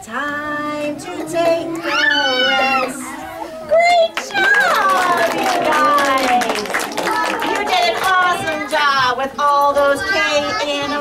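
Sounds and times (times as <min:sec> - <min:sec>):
children calling out: 0:01.2 - 0:09.1, 0:09.8 - 0:11.0.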